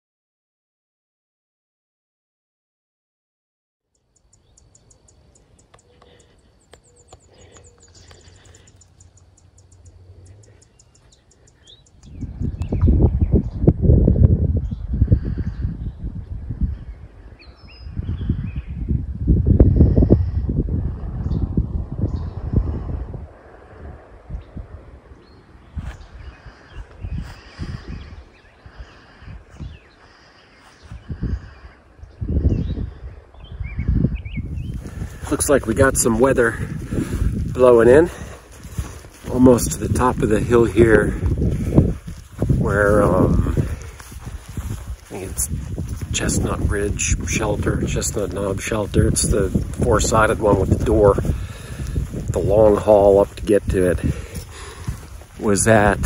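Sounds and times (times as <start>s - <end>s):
birds chirping in a trill: 3.9s - 13.8s, 14.6s - 19.1s, 24.4s - 56.0s
wind gusting across microphone: 4.8s - 56.0s.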